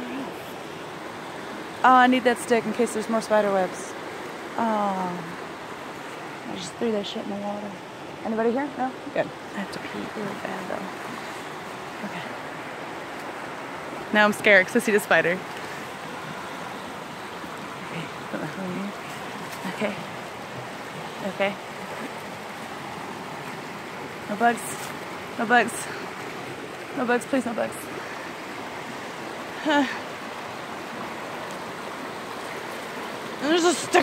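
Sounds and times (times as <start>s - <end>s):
flowing water rushing: 0.0s - 34.0s.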